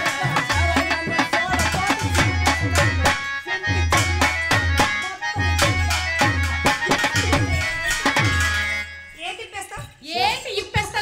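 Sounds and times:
hand drums beating: 0:00.0 - 0:08.9, 0:09.6 - 0:11.0
held melody notes: 0:00.0 - 0:09.4.

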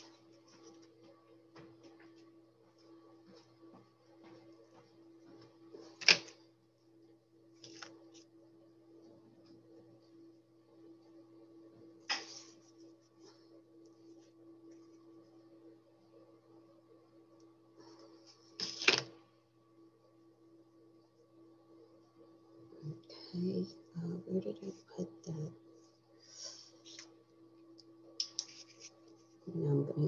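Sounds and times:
faint electrical hum: 0:00.0 - 0:30.0.

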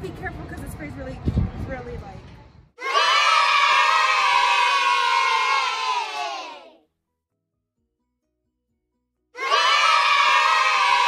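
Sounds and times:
children cheering: 0:02.8 - 0:06.7, 0:09.4 - 0:11.0.

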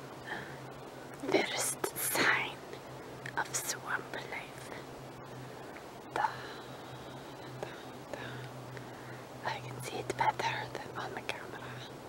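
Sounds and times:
faint low hum: 0:00.0 - 0:12.0
person whispering: 0:01.2 - 0:02.6.

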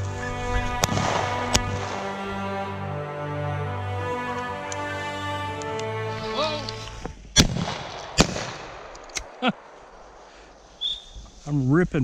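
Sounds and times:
music: 0:00.0 - 0:07.1
shotgun shots with echo: 0:07.4 - 0:09.9.

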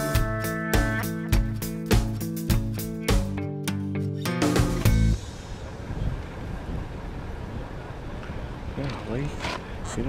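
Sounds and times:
acoustic guitar music: 0:00.0 - 0:05.5
wind buffeting microphone: 0:05.4 - 0:08.8.

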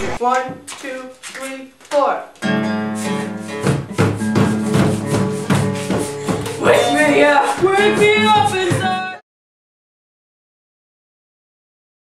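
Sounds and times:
acoustic guitar strumming: 0:02.4 - 0:09.2
plastic box struck by hand: 0:03.6 - 0:06.6.

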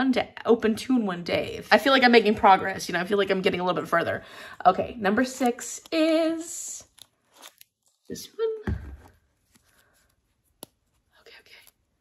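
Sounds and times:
paper slip being unrolled: 0:06.8 - 0:08.2, 0:09.2 - 0:11.9.

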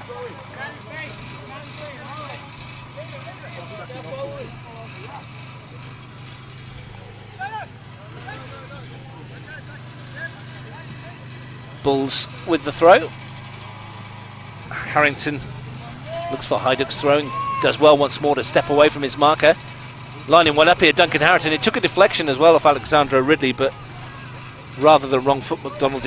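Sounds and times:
distant players shouting: 0:00.0 - 0:26.0.

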